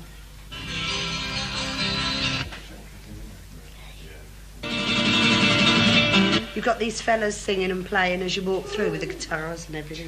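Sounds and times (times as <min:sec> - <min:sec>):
strummed guitar music: 0:00.5 - 0:02.7, 0:04.6 - 0:07.2.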